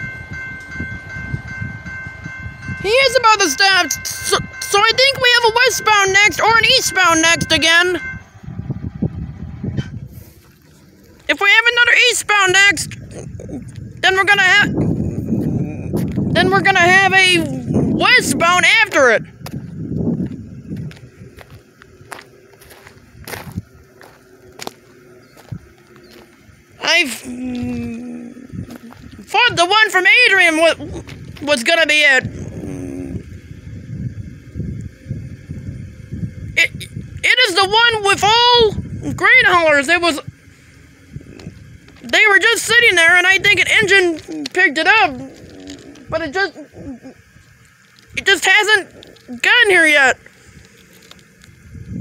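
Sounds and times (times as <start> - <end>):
faint high-pitched tones: 0.0 - 9.7
wind buffeting microphone: 0.0 - 52.0.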